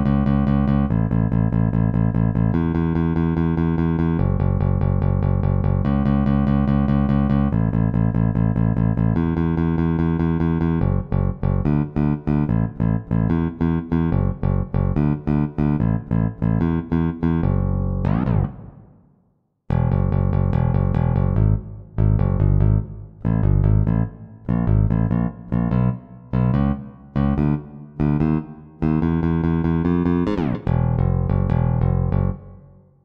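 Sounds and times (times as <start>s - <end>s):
electric bass guitar playing: 0.0s - 19.0s, 19.7s - 32.6s.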